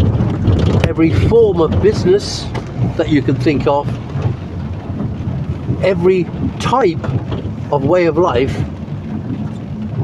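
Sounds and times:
rain pattering on vehicle: 0.0 - 10.0
road and engine rumble: 0.0 - 10.0.

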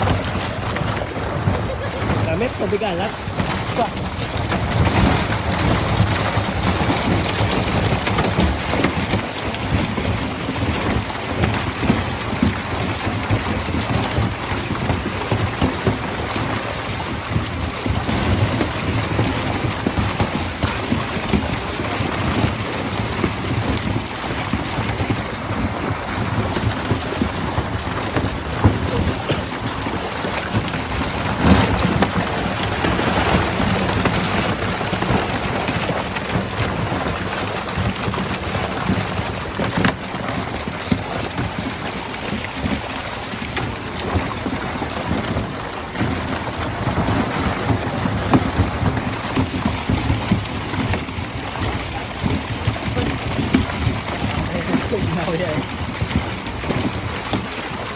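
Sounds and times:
fish thrashing and splashing: 0.0 - 57.9.

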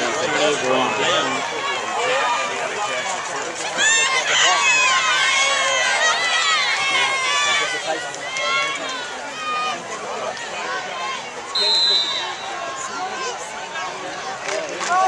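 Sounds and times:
crowd yelling and cheering: 0.0 - 15.0
shrill whistle blast: 11.6 - 12.5.

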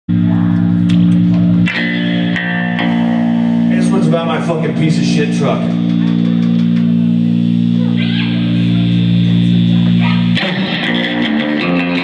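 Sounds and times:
rockabilly band playing live: 0.2 - 8.0, 8.9 - 12.0.

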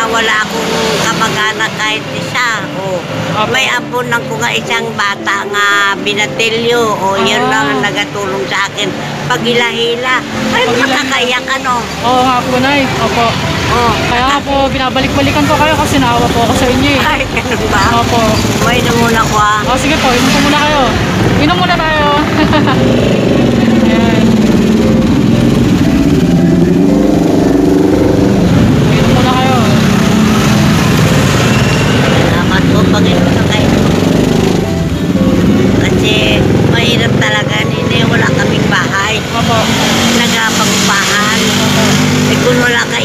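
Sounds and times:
elderly woman's voice: 0.0 - 11.9, 35.6 - 43.0
vehicle engine running: 8.8 - 43.0.

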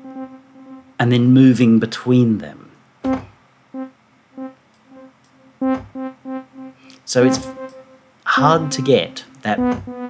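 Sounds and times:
synth note with delay echoes: 0.0 - 1.2, 3.8 - 10.0.

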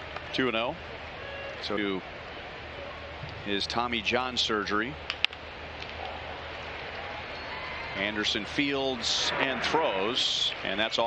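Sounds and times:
crowd murmur: 0.8 - 11.0.

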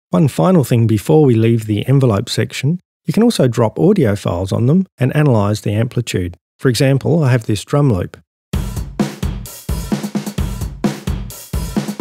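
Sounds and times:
drum loop beat: 8.5 - 12.0.

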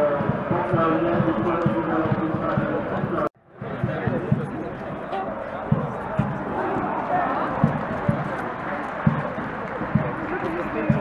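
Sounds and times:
boots marching on paving stones: 0.2 - 11.0.

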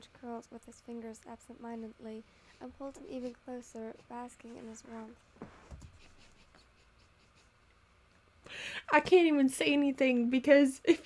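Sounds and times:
person speaking: 0.0 - 5.2
stifled laugh: 6.0 - 7.6.

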